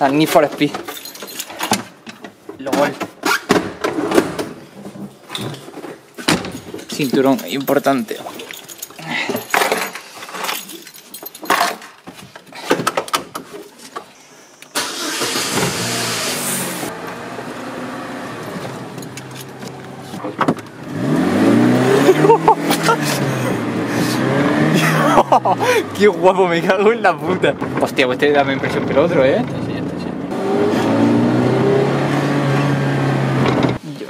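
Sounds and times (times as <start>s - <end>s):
car engine starting: 14.7s - 33.8s
car engine running and revving: 15.7s - 26.3s, 28.6s - 33.8s.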